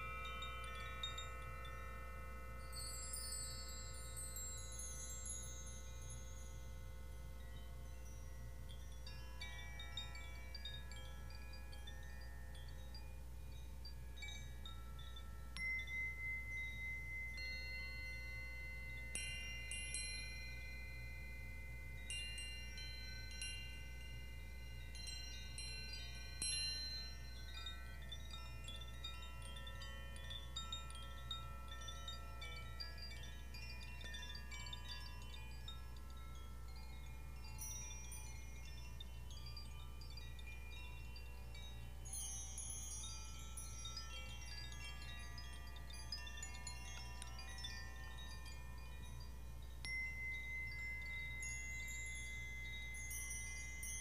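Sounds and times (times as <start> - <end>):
hand-held chimes ringing: 0.0 - 54.0.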